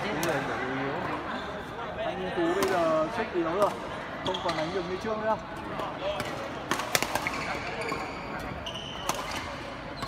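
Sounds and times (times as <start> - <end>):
rackets hitting shuttlecock: 0.0 - 1.2, 2.6 - 3.8, 5.7 - 10.0
shoes squeaking on court floor: 4.2 - 5.1, 7.2 - 10.0.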